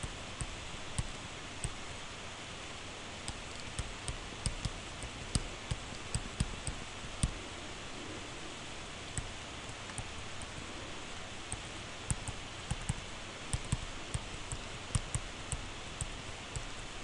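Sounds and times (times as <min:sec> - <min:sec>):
steady hiss: 0:00.0 - 0:17.0
stylus clicking on tablet screen: 0:03.2 - 0:07.4, 0:11.5 - 0:16.9.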